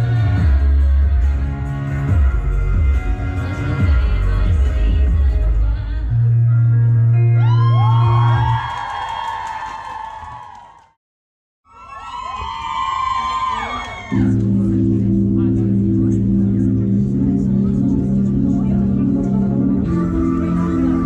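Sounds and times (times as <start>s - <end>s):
song with guitar and bass: 0.0s - 8.3s, 14.2s - 21.0s
audience whooping and cheering: 7.3s - 11.0s, 11.7s - 14.4s.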